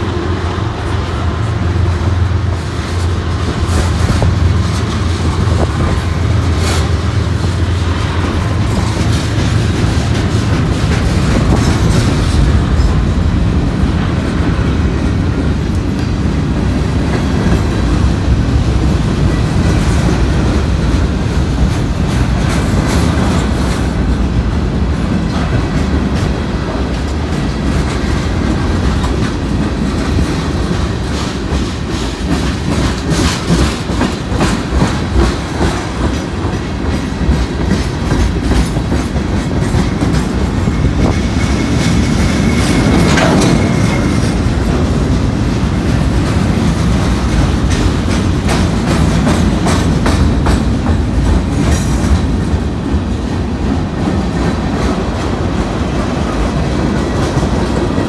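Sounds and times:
freight train cars rumbling: 0:00.0 - 0:58.0
wheels clicking over rail joints: 0:00.7 - 0:58.0.

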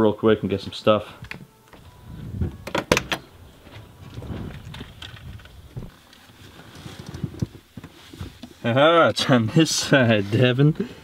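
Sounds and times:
faint handling noise: 0:00.7 - 0:10.8
thuds: 0:01.4 - 0:06.0
sharp clicks or knocks: 0:02.4 - 0:03.3.

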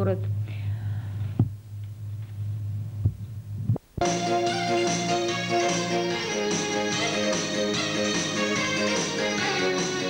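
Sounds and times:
low electrical hum: 0:00.0 - 0:04.0.

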